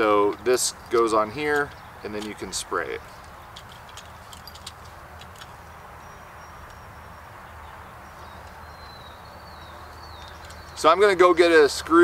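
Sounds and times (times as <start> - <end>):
outdoor background hum: 0.0 - 12.0.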